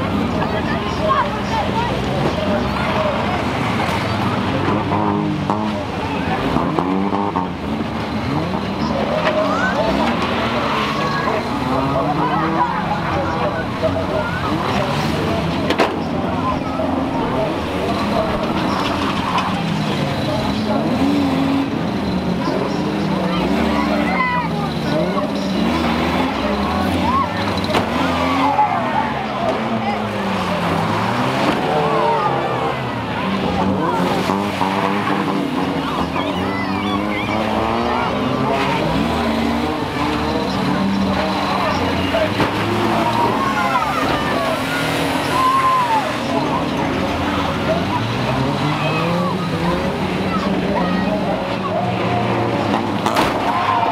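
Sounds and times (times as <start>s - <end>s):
van engines revving past: 0.0s - 53.9s.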